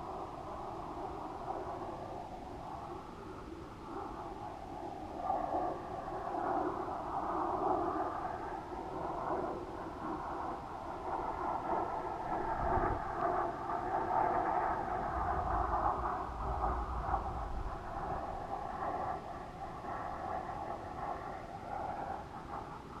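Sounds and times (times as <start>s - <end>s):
rushing air on microphone: 0.0s - 23.0s.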